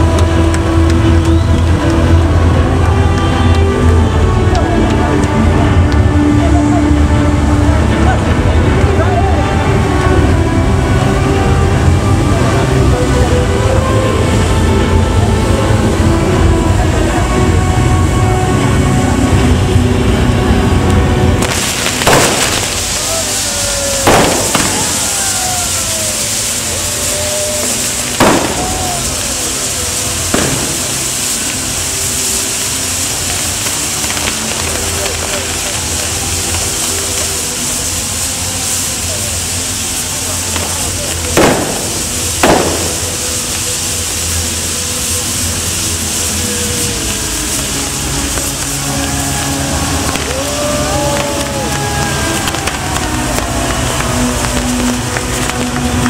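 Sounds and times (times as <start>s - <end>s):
crowd voices: 0.0s - 56.0s
music: 0.0s - 56.0s
fireworks bangs: 18.6s - 56.0s.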